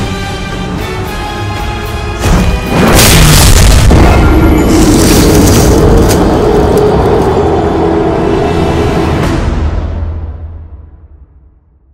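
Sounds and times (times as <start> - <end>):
music: 0.0 - 11.9
rumbling boom sound effect: 2.2 - 6.7.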